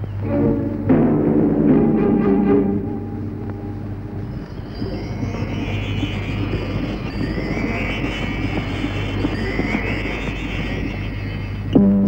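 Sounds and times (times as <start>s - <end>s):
tense film score drone: 0.0s - 12.0s.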